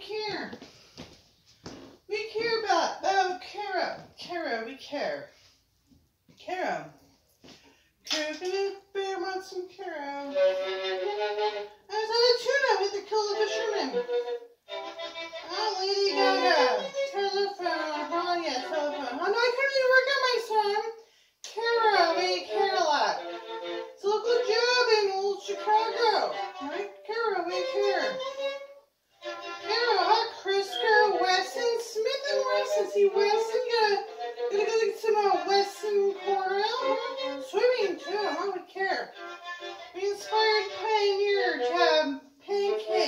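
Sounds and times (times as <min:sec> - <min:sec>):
violin sliding notes: 0:08.1 - 0:20.5, 0:21.6 - 0:43.0.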